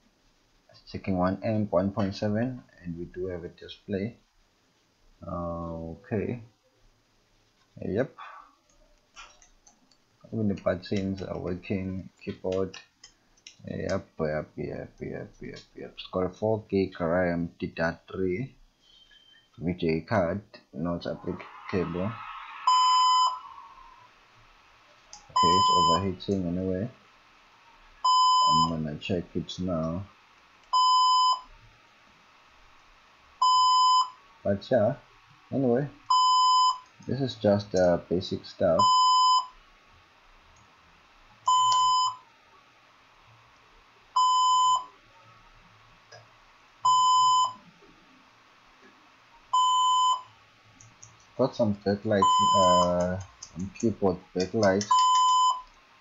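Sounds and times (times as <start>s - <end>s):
electronic beeper high beeps: 21.2s - 23.6s, 25.4s - 26.0s, 52.2s - 52.9s
laptop system beep: 22.7s - 23.4s, 25.4s - 26.0s, 28.0s - 28.7s, 41.5s - 42.2s, 46.9s - 47.6s, 49.6s - 50.3s, 52.2s - 53.0s, 54.9s - 55.7s.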